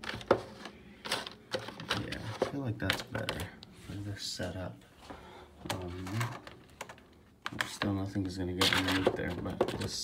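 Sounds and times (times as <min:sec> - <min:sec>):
plastic clicks and knocks: 0:08.6 - 0:10.0.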